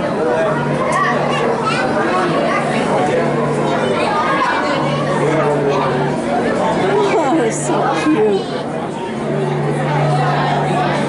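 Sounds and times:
people chattering: 0:00.0 - 0:11.0
steady low hum: 0:00.0 - 0:11.0.

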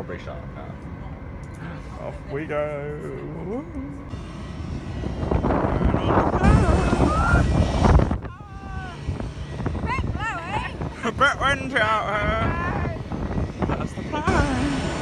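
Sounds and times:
aircraft engines: 0:00.0 - 0:15.0
wind buffeting microphone: 0:02.1 - 0:15.0
voices: 0:05.4 - 0:15.0.

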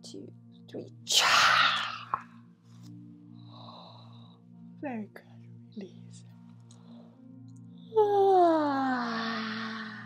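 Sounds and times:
ambient music drone: 0:00.0 - 0:10.0.

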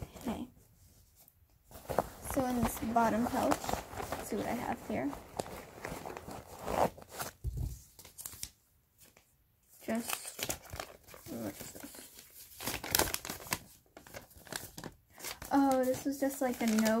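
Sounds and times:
paper rustling and crinkling: 0:00.0 - 0:17.0.

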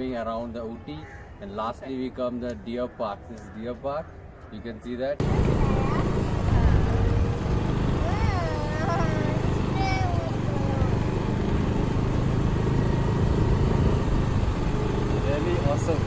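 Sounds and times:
wind and road noise rumble: 0:00.0 - 0:16.0.

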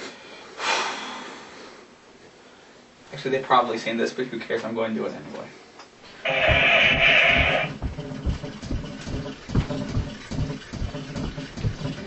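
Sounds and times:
feet stomping on a floor: 0:06.2 - 0:12.0.

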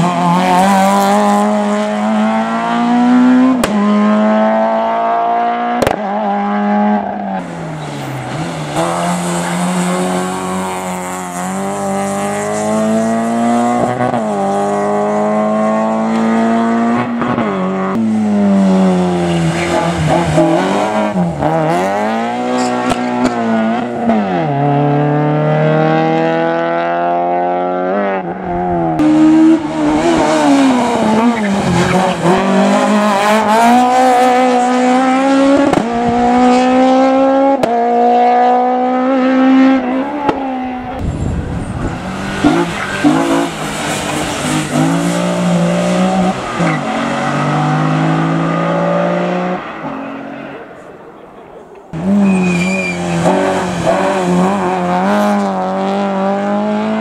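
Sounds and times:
race cars accelerating: 0:00.0 - 0:57.0.

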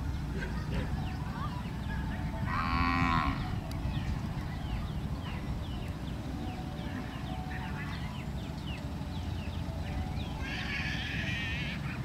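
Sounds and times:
steady low rumble: 0:00.0 - 0:12.0
cow mooing: 0:02.5 - 0:03.6.

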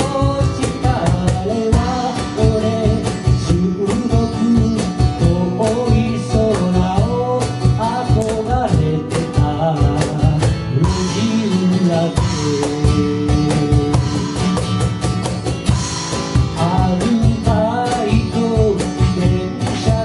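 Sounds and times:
person singing: 0:00.0 - 0:14.6, 0:16.5 - 0:20.0
cajon beat: 0:00.0 - 0:20.0
strummed acoustic guitar: 0:00.0 - 0:20.0.

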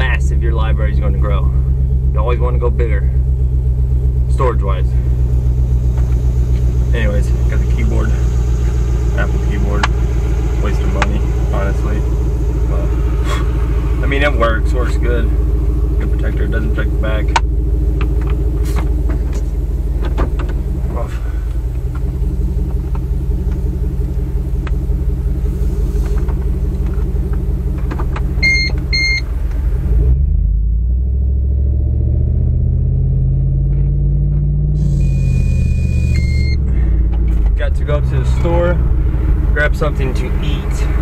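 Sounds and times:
vehicle engine from inside cabin: 0:00.0 - 0:41.0
longer electronic tone: 0:34.8 - 0:36.6
electronic chime beeps: 0:34.9 - 0:36.6.

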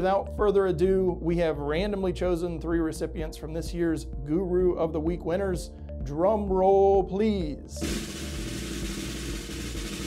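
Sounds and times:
drum roll: 0:07.8 - 0:10.0.

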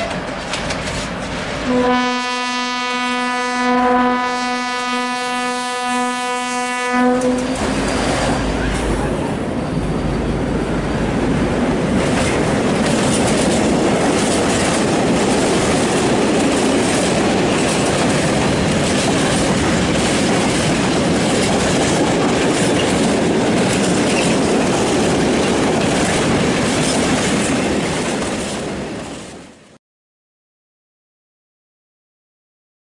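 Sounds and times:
train wheels clattering over rail joints: 0:00.0 - 0:01.6, 0:11.7 - 0:29.4
diesel locomotive engine rumbling: 0:00.0 - 0:29.7.

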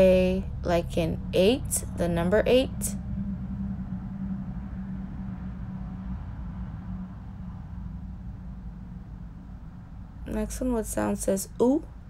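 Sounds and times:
low pitched hum: 0:00.0 - 0:12.0.

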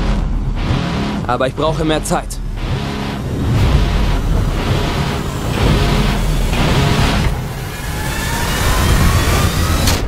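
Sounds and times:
sharp hit: 0:00.0 - 0:08.6
rushing trailer build: 0:00.0 - 0:10.0.

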